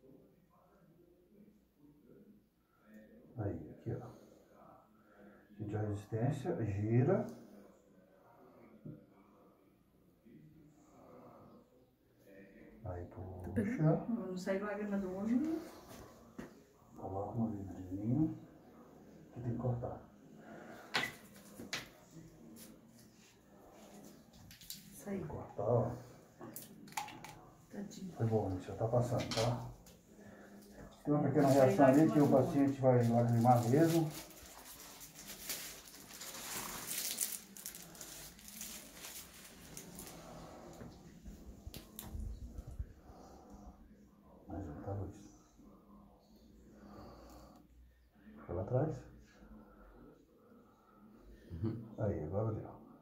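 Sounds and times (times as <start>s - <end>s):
packaging rustling: 33.1s - 40.2s
short low vocal sound: 51.5s - 51.9s.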